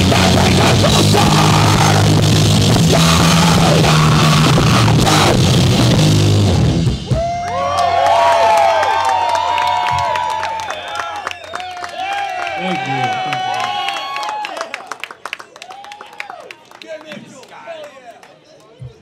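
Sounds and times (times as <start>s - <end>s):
punk rock band playing live: 0.0s - 7.3s
crowd cheering and whooping: 7.0s - 16.7s
people clapping: 7.2s - 19.0s.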